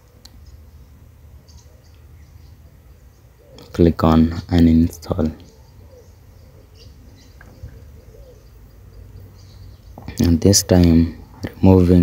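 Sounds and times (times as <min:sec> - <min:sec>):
low steady hum: 0:00.0 - 0:12.0
faint wavering birdlike call: 0:05.0 - 0:10.0.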